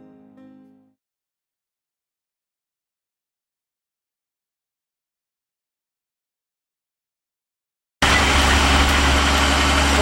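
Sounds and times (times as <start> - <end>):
road noise: 8.0 - 10.0
vehicle engine drone: 8.0 - 10.0.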